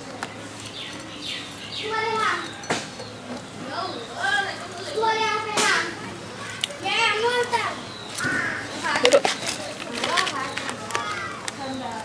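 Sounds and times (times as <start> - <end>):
children calling and shouting: 1.1 - 12.0.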